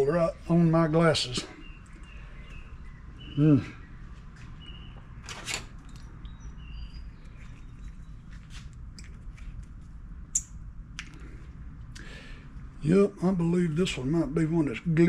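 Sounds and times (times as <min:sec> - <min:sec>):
low steady background noise: 0:00.0 - 0:15.0.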